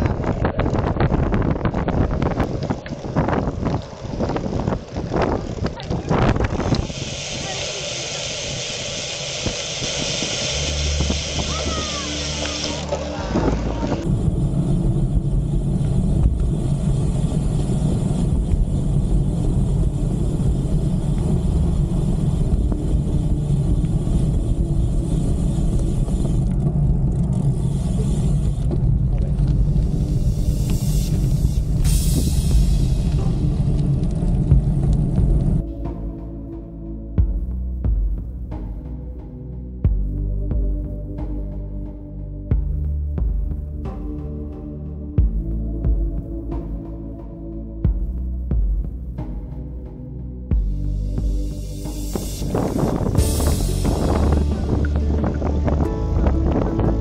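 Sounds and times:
wind buffeting microphone: 0:00.0 - 0:07.8, 0:52.0 - 0:57.0
road noise: 0:00.0 - 0:57.0.

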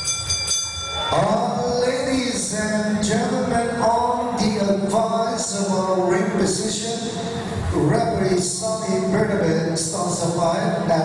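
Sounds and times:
boxing ring bell ringing: 0:00.0 - 0:01.7.

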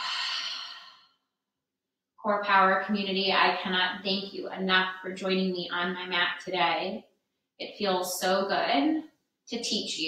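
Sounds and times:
woman exhaling breathy sigh: 0:00.0 - 0:01.1.

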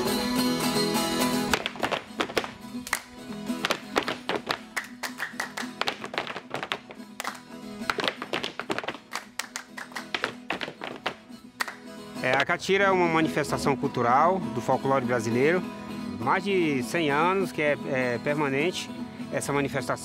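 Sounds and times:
hands clapping: 0:01.4 - 0:12.5
boots stamping on wooden platform: 0:01.5 - 0:09.2, 0:09.9 - 0:11.2.

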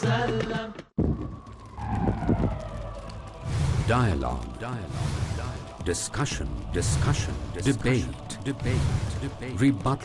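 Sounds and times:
low rumbling boom: 0:01.0 - 0:09.5.

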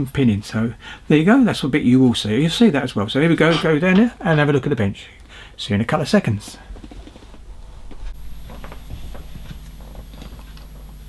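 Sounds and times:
low hum: 0:06.8 - 0:11.0.

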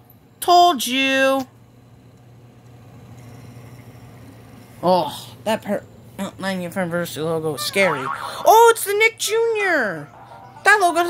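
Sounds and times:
low background hum and hiss: 0:00.0 - 0:11.0
person speaking: 0:04.8 - 0:11.0.

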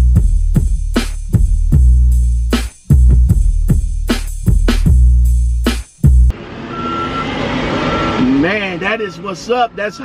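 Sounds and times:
truck yard rumble: 0:06.3 - 0:10.0
backup alarm beeping: 0:06.6 - 0:10.0.

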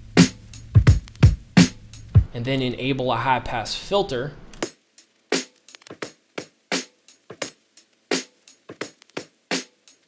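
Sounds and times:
filtered looped drum break: 0:00.0 - 0:02.3, 0:04.6 - 0:10.0.

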